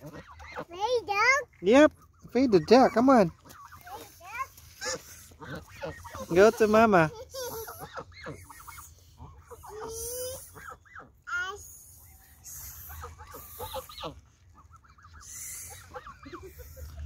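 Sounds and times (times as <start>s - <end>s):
geese clucking calls: 0.0s - 17.0s.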